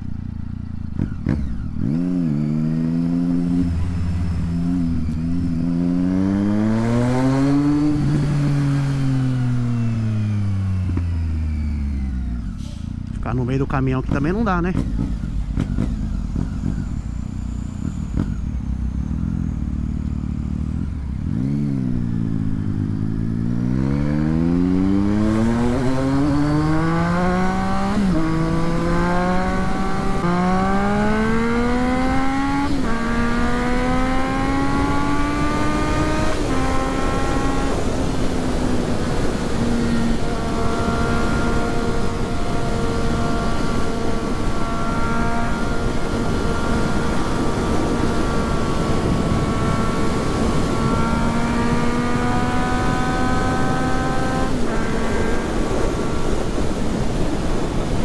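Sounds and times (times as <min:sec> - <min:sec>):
motorcycle engine accelerating: 0:00.0 - 0:58.0
wind noise: 0:23.2 - 0:58.0.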